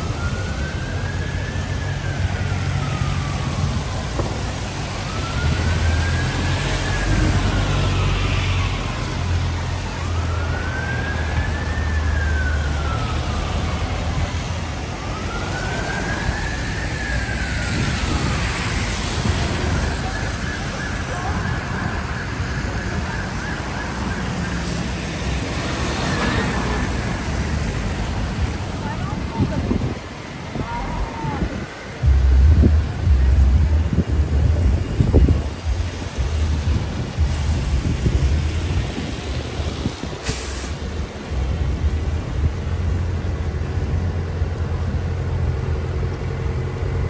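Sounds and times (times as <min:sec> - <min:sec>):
emergency siren wailing: 0:00.0 - 0:47.0
low rumble of city traffic: 0:00.0 - 0:47.0
bus engine running: 0:23.9 - 0:47.0.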